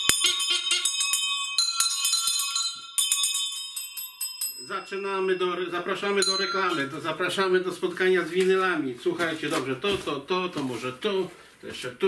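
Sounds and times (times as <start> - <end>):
small bells jingling: 0.0 - 8.0.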